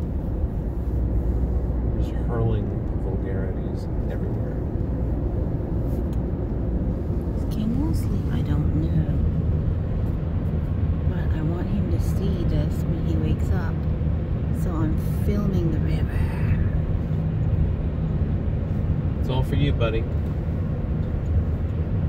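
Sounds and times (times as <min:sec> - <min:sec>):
engine and road noise in cabin: 0:00.0 - 0:22.0.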